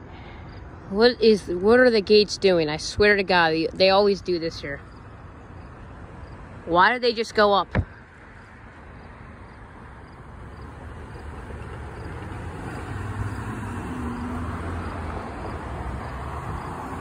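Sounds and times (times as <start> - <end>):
vehicles driving over crossing: 0.0 - 17.0.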